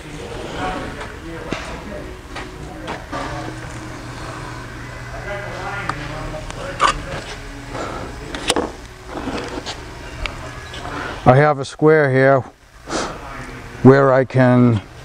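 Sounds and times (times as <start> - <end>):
faint talk: 0.0 - 8.8
low steady hum: 0.0 - 15.0.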